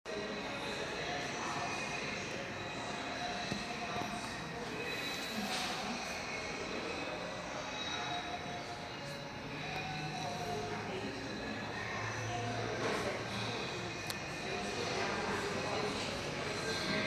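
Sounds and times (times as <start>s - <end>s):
indoor background noise: 0.1s - 17.0s.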